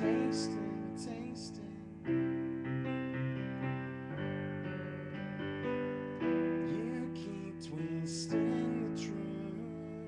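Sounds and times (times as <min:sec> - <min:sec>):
piano playing held chords: 0:00.0 - 0:10.0.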